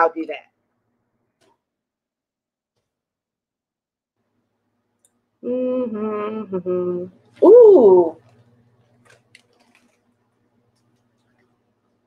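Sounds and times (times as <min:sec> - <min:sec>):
faint clicks and rustles: 0:08.2 - 0:11.7.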